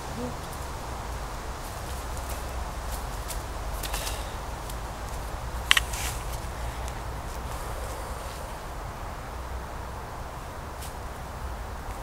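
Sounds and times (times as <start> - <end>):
soft scuffs and rustles: 1.5 - 8.6.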